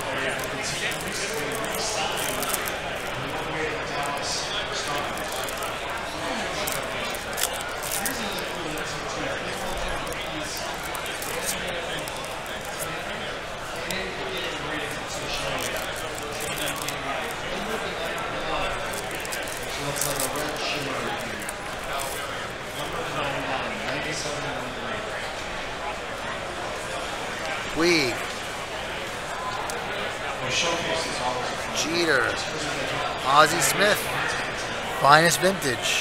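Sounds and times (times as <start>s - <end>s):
trading cards clicking and rustling: 0.0s - 13.0s
chatter of many voices: 0.0s - 36.0s.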